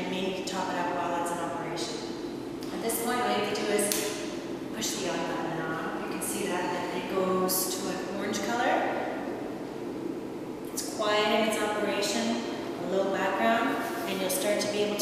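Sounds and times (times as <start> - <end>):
woman speaking: 0.0 - 9.1, 10.7 - 15.0.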